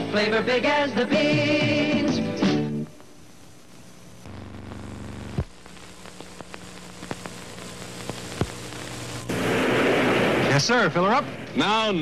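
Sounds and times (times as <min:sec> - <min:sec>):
faint tape hiss: 0:00.0 - 0:12.0
steady buzzing hum: 0:02.7 - 0:12.0.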